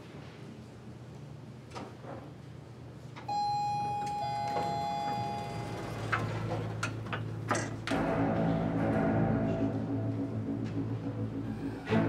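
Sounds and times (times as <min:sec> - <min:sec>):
elevator arrival chime: 0:03.3 - 0:07.0.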